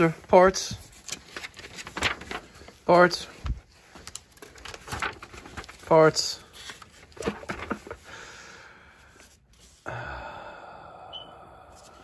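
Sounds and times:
man sighing: 9.8s - 12.0s.

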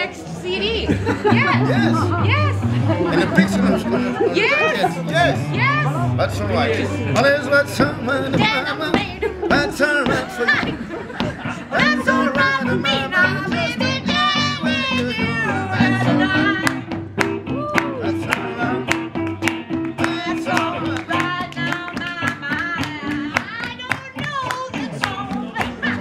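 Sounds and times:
blues guitar jam: 0.0s - 26.0s.

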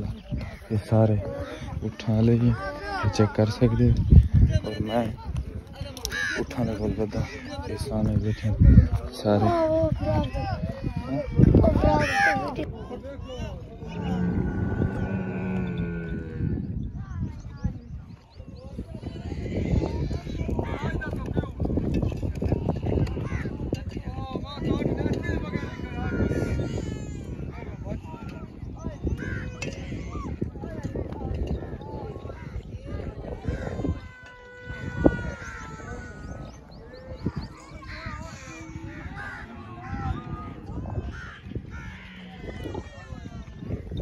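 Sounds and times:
faint wavering voices: 0.0s - 44.0s
camel low call: 13.8s - 16.8s.

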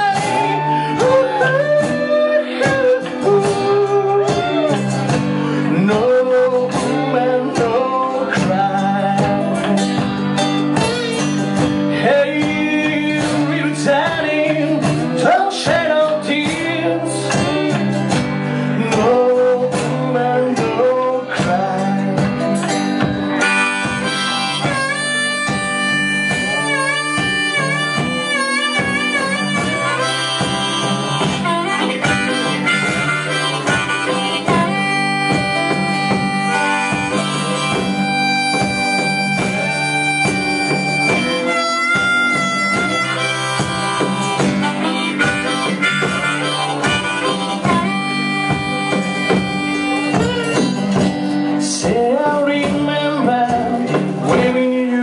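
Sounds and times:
harmonica wavering notes: 0.0s - 19.5s, 21.2s - 52.0s
lap steel guitar: 0.0s - 55.0s
drum struck with stick: 8.4s - 18.4s, 20.8s - 54.9s.

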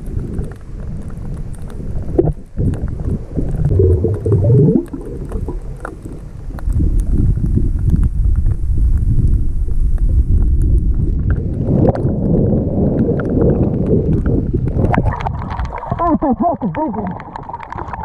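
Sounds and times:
faint ticks: 0.0s - 15.8s
muffled underwater water rumble: 0.0s - 18.0s
water gurgle: 0.0s - 18.0s.

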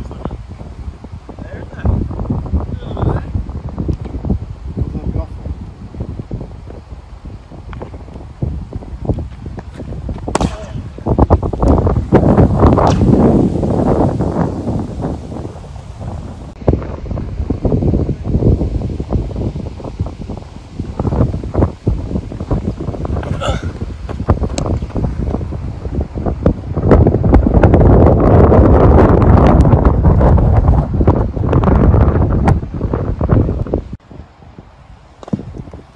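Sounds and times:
wind buffeting microphone: 0.0s - 35.9s.

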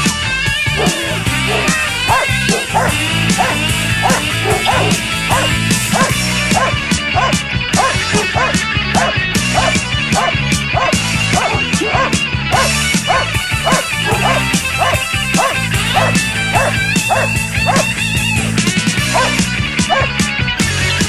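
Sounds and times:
background music with beat: 0.0s - 21.0s
dog barking: 0.8s - 18.0s, 19.1s - 20.2s.

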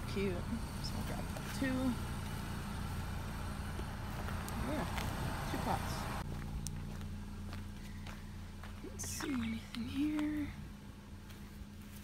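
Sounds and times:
steady low hum: 0.0s - 12.0s
footsteps on grass and pavement: 0.9s - 12.0s.

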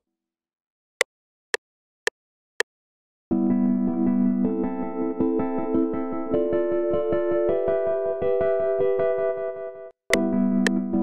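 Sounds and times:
electric piano chords: 3.3s - 11.0s.

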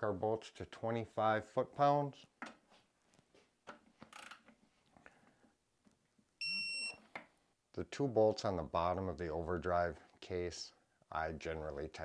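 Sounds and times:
torque wrench beep: 6.4s - 7.0s.

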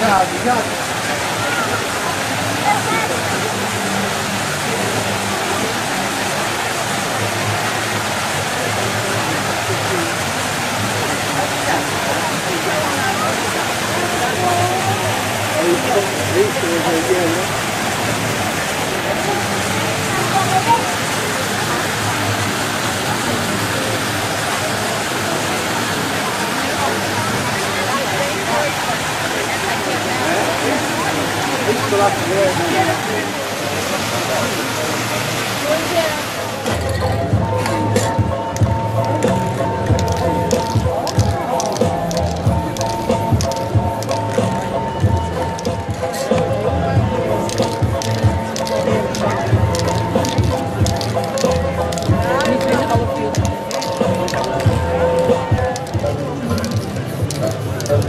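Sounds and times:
fountain water splashing: 0.0s - 58.0s
indistinct chatter of people: 0.0s - 58.0s.

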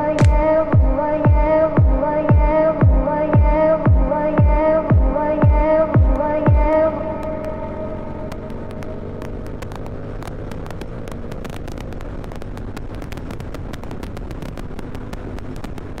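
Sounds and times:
motorcycle engine accelerating: 0.0s - 16.0s.

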